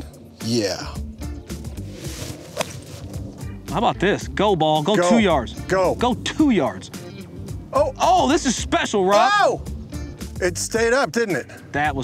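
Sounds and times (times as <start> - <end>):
background music: 0.0 - 12.0
golf club striking ball: 1.7 - 3.5.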